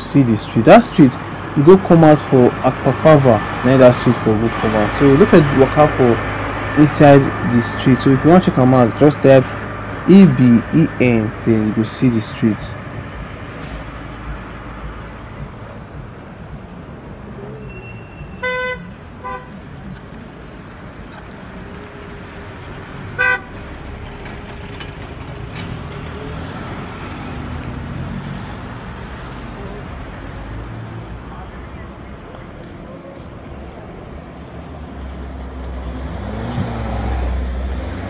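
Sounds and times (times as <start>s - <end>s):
passing cars: 0.0s - 38.0s
car horn toots: 17.7s - 19.6s, 23.2s - 23.5s.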